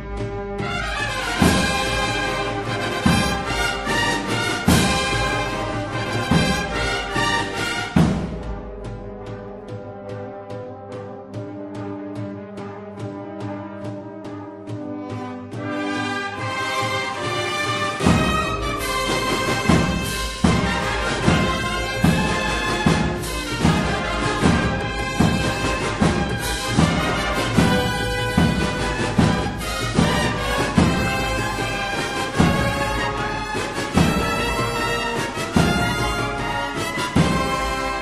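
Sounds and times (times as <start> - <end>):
heavy drum beat: 0.0 - 38.0
held brass chords: 0.0 - 38.0.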